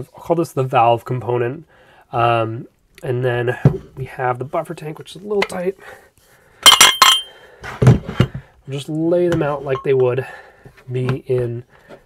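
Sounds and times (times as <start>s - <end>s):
metal parts clinking: 6.6s - 7.3s.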